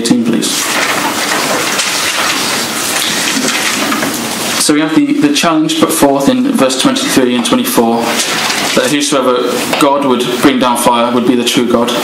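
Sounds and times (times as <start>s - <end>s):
book pages rustling: 0.5s - 4.6s.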